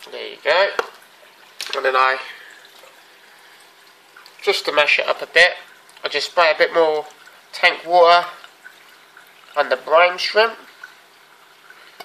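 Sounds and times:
faint hiss of running water: 0.0s - 12.0s.

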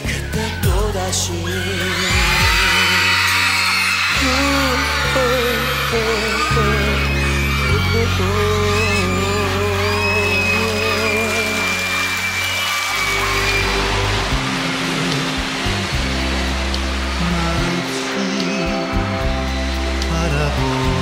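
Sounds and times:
male singer holding a note: 0.0s - 3.3s, 4.1s - 11.8s, 17.2s - 19.3s, 20.0s - 21.0s
pop song: 0.0s - 21.0s
noisy rush: 9.8s - 21.0s
band accompaniment: 10.4s - 21.0s.

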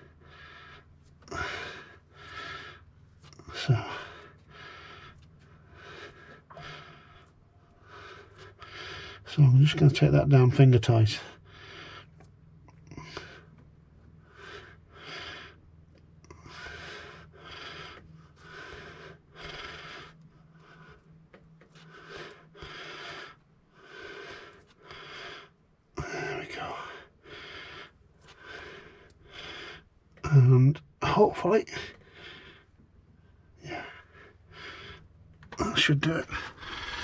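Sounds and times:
man breathing heavily: 0.0s - 9.4s, 11.2s - 30.4s, 31.1s - 37.0s
faint low hum: 0.0s - 37.0s.

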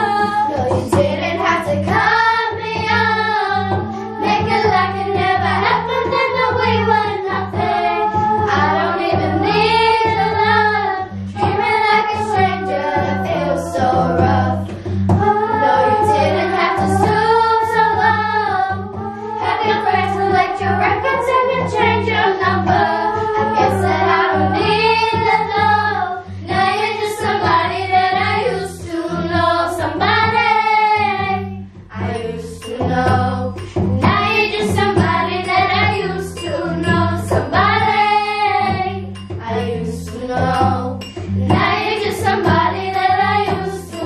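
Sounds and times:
children singing in unison: 0.0s - 44.0s
strummed acoustic guitar: 0.0s - 44.0s.

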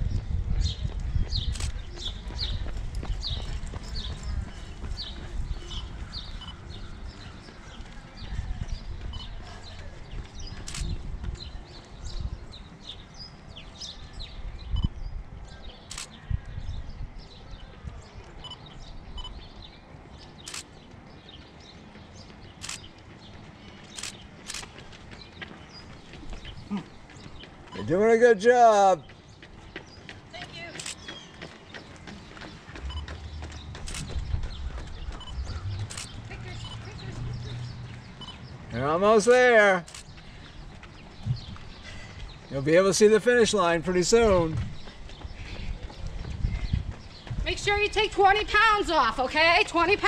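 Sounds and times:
gusty low rumble: 32.8s - 36.7s
sharp clicks: 35.2s - 36.8s.

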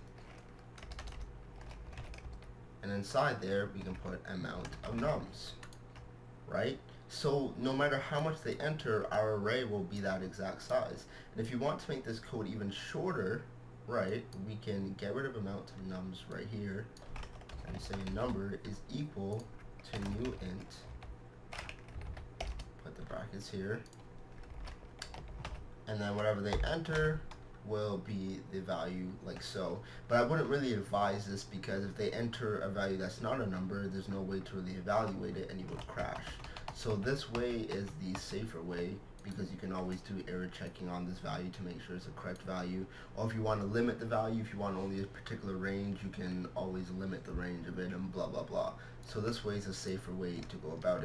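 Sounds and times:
keyboard typing: 0.1s - 2.5s, 17.0s - 18.4s, 19.3s - 22.8s, 23.8s - 25.6s.

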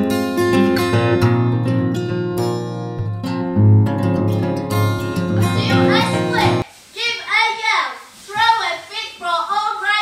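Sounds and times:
acoustic guitar music: 0.0s - 6.6s
young voices calling out: 5.5s - 10.0s.

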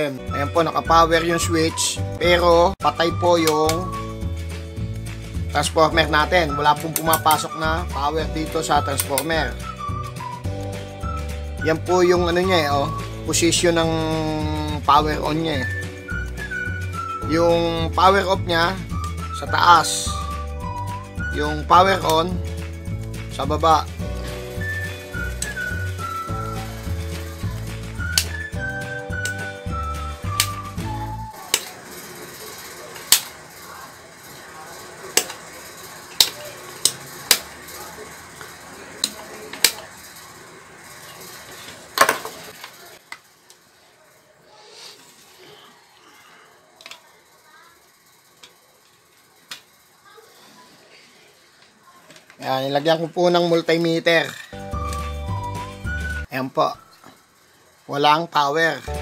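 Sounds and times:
background music with steady beat: 0.0s - 32.1s, 54.4s - 56.3s.

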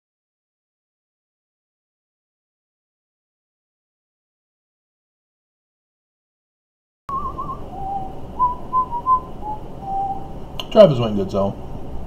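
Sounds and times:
whistled notes: 7.1s - 10.4s
low room noise: 7.1s - 12.0s.

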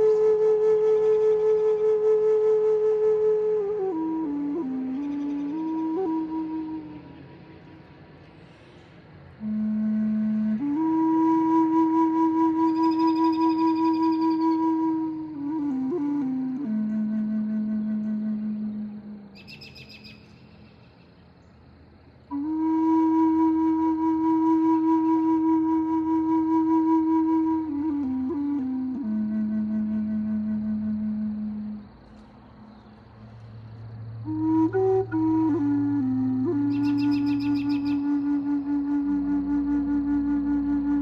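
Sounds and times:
flute long low note: 0.0s - 21.5s, 22.2s - 41.0s
faint bird chirps: 12.7s - 14.6s, 19.4s - 21.7s, 32.0s - 33.8s, 36.7s - 38.2s.

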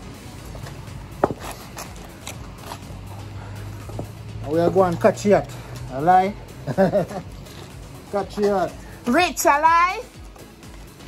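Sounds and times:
footsteps scuffing on pavement: 0.3s - 4.2s.

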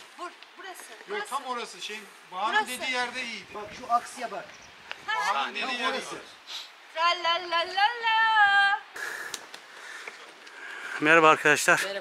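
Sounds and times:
outdoor noise: 0.0s - 12.0s
faint clicks: 9.2s - 10.8s.

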